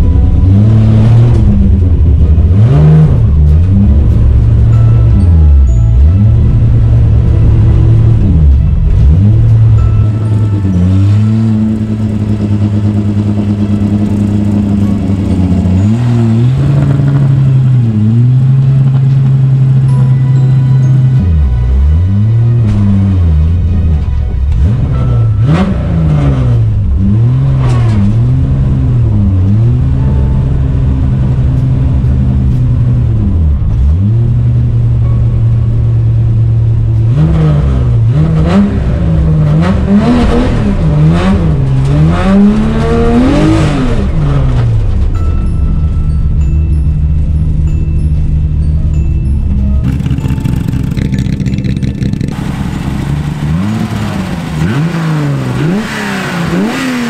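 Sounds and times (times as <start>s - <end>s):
rally car engine revving: 0.0s - 20.0s, 20.9s - 45.2s, 49.5s - 57.0s.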